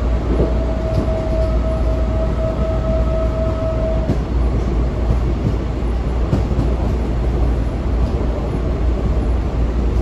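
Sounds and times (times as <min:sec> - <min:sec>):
train car rumbling in motion: 0:00.0 - 0:10.0.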